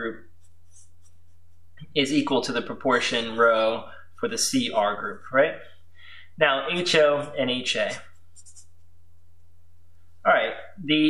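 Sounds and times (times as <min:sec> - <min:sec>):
steady low hum: 0:00.0 - 0:11.0
marker scratching on paper: 0:00.3 - 0:01.6, 0:07.2 - 0:08.9.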